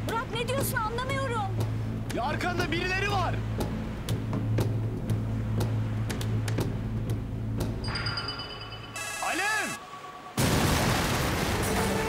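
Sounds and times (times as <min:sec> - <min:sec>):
mobile phone ringing tone: 0:07.9 - 0:09.8.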